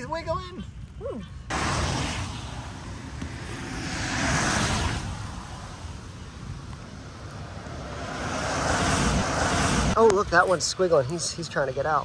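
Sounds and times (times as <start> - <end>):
car tyre noise passing: 1.5 - 11.7.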